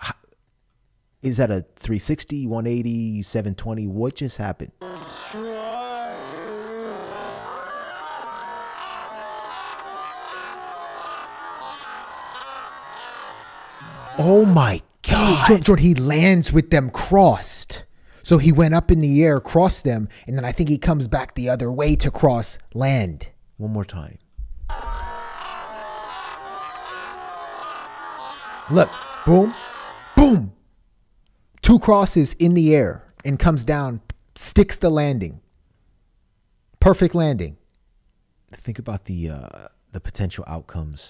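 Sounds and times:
overlapping voices: 0:04.8 - 0:15.8, 0:24.7 - 0:30.4.

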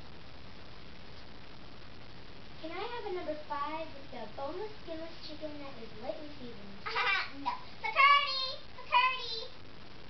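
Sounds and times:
steady background hiss: 0:00.0 - 0:10.0
child calling: 0:06.9 - 0:09.5.

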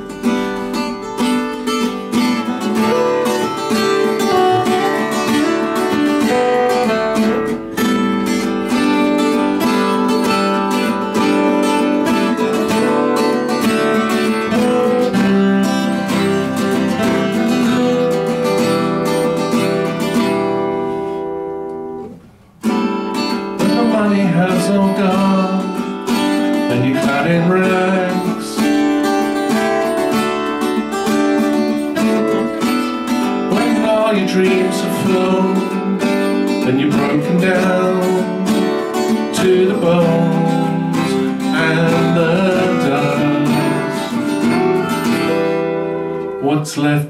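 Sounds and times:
guitars strumming chords: 0:00.0 - 0:47.0.

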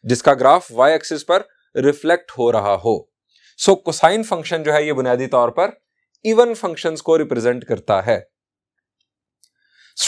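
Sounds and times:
man speaking: 0:00.0 - 0:03.0, 0:03.6 - 0:08.2.

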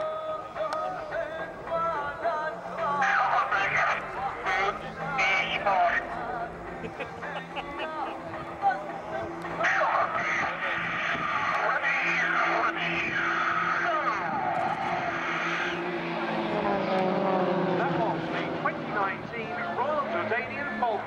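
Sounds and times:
plane passing with falling pitch: 0:00.0 - 0:21.0
propeller plane engines droning: 0:00.0 - 0:21.0.

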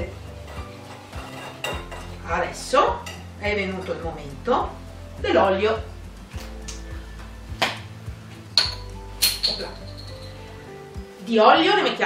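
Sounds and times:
background music: 0:00.0 - 0:12.0
kitchen items knocking and clinking: 0:08.6 - 0:10.4.

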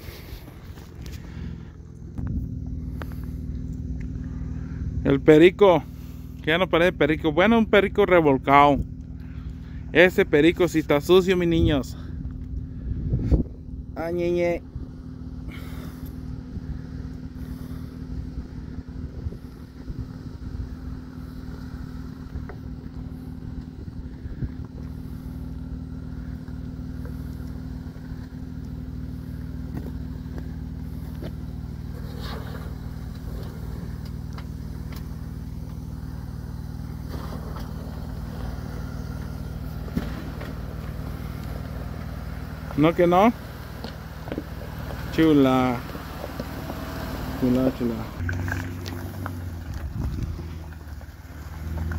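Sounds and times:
car engine running steadily: 0:00.0 - 0:51.9.

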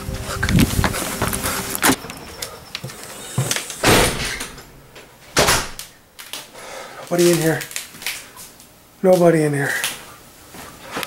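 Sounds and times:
door opening and shutting: 0:01.2 - 0:05.9.

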